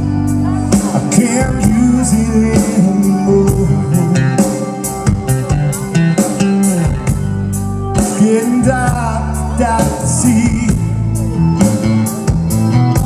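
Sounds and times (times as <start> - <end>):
bass guitar: 0.0 - 13.0
drum kit beat: 0.0 - 13.0
electric guitar: 0.0 - 13.0.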